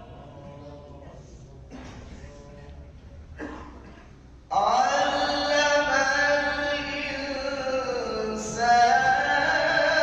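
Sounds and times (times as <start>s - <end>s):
man chanting recitation: 4.5s - 10.0s.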